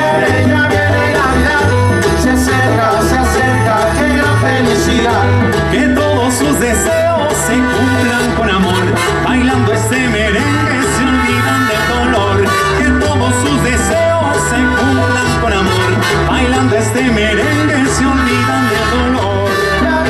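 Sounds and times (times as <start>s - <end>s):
live dance band playing: 0.0s - 20.0s
trumpets: 6.9s - 20.0s.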